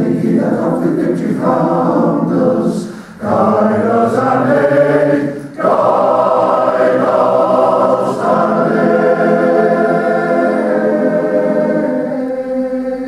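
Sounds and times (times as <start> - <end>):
male choir singing in harmony: 0.0 - 13.0.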